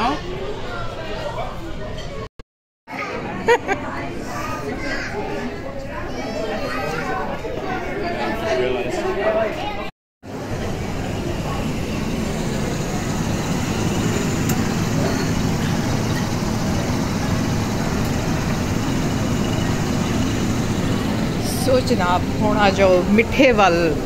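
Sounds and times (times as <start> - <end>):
restaurant background rumble: 3.0 - 24.0.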